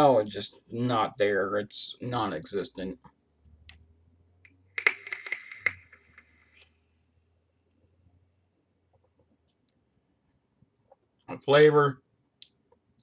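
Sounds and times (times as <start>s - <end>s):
e-liquid crackling on hot coil: 4.8s - 6.7s.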